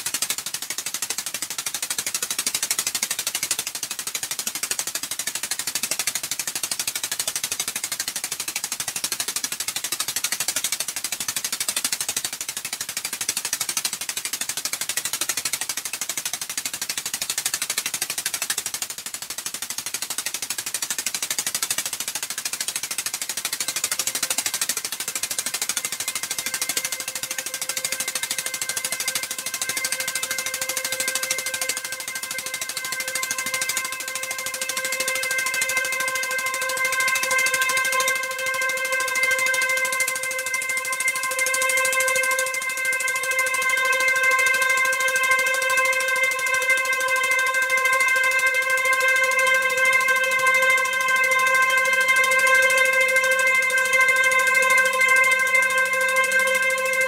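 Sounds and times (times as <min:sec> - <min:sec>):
lower sustained tones: 0:23.4 - 0:57.0
steady drone tone: 0:23.5 - 0:57.0.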